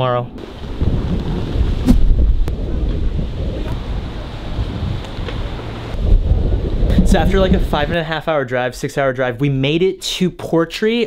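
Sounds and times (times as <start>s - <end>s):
wind buffeting microphone: 0.3s - 8.2s.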